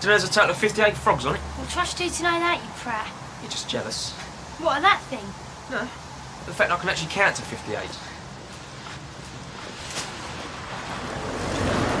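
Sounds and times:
car passing close by: 9.7 - 12.0.

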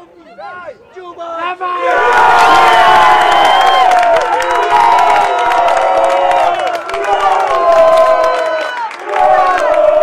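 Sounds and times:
crowd cheering and shouting: 1.6 - 10.0.

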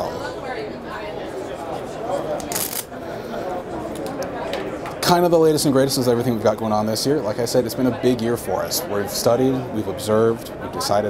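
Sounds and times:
chatter of a busy hall: 0.0 - 11.0.

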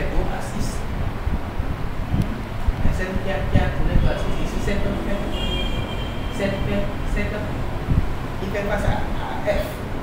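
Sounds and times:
man speaking: 0.0 - 0.9, 2.9 - 5.6, 6.3 - 7.7, 8.4 - 10.0.

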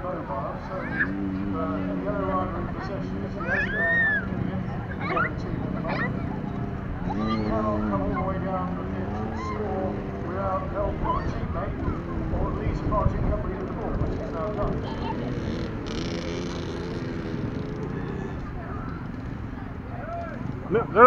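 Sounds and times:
young children calling and chattering: 0.0 - 21.0.

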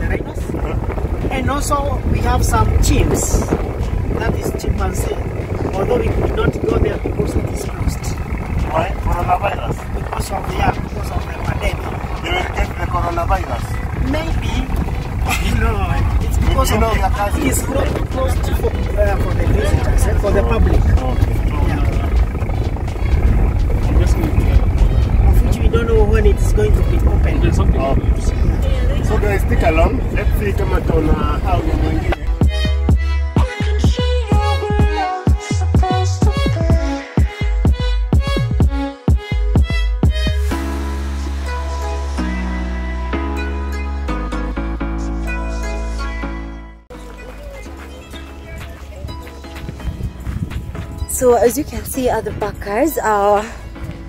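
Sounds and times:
engine and tyres rumbling: 0.0 - 35.0, 35.6 - 54.0
people talking indistinctly: 0.0 - 38.6, 46.9 - 54.0.

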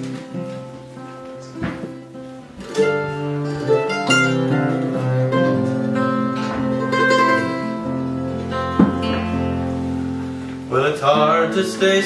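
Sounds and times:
acoustic string trio playing folk: 0.0 - 12.0.

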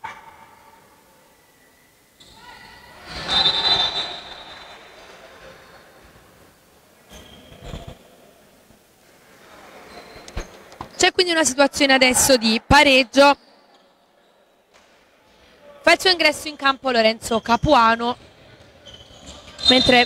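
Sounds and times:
people shouting in a hall: 2.2 - 4.3, 11.4 - 13.1.

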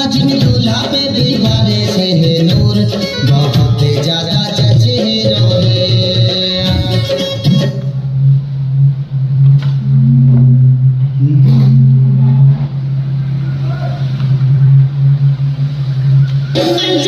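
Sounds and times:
loud steady low hum: 4.8 - 17.0.

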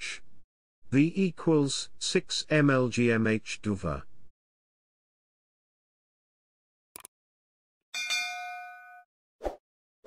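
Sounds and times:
notification bell ding: 8.0 - 9.1.

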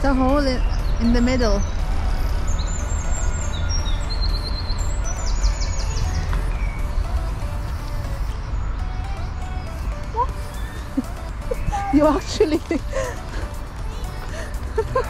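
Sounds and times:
songbirds chirping and trilling: 0.0 - 15.0
steady low rumble: 0.0 - 15.0.

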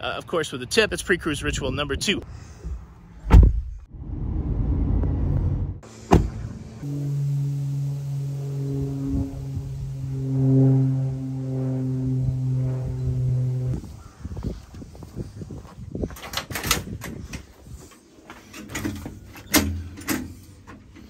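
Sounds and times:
car road rumble: 2.6 - 13.8
low held music chord: 6.6 - 13.8.

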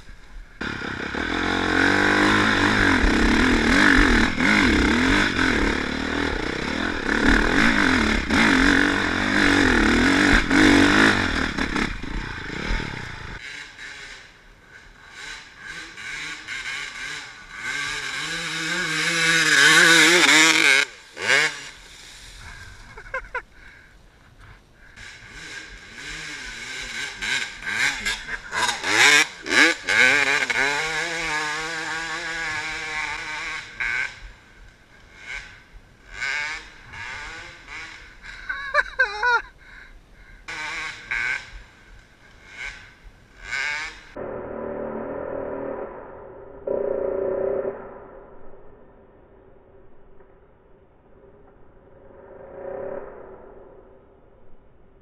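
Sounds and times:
two-stroke motorcycle revving past: 0.5 - 23.4, 25.0 - 39.5, 40.5 - 44.2
dirt bike engine revving hard: 0.6 - 14.4, 15.0 - 23.4, 25.0 - 34.3, 35.1 - 39.5, 40.5 - 41.7, 42.4 - 44.2.

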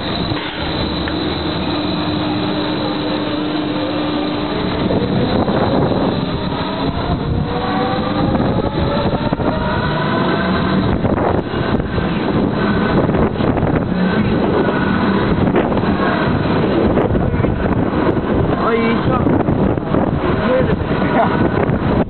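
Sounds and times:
ride drive humming and whining: 0.0 - 22.0
rushing noise: 0.0 - 22.0.

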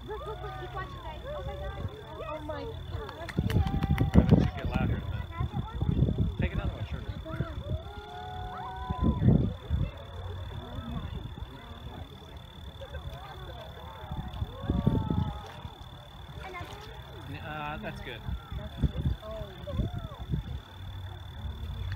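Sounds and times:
onlookers exclaiming: 0.0 - 5.6, 7.0 - 17.3, 18.2 - 21.9
faint high whine: 3.7 - 21.9.

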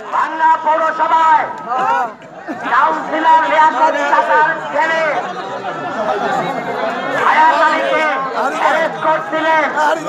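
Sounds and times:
crowd chatter: 0.0 - 10.0
men talking over one another: 0.0 - 10.0.

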